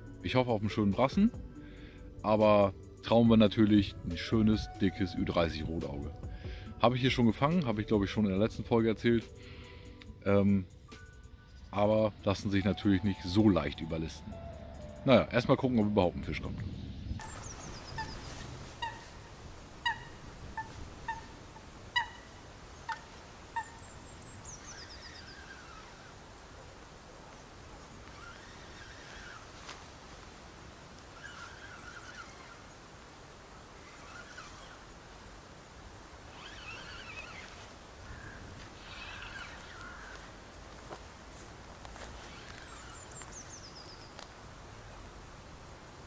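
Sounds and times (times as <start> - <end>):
soft bird twittering: 16.8 - 40.6, 41.9 - 45.0
short sharp bird calls: 17.2 - 26.3, 36.3 - 40.4
thin high bird chirps: 17.2 - 26.4, 27.8 - 29.6, 30.2 - 35.6, 36.3 - 40.4, 42.2 - 44.2
descending bird trill: 17.2 - 26.5, 27.8 - 35.7, 36.3 - 40.5, 42.2 - 44.2.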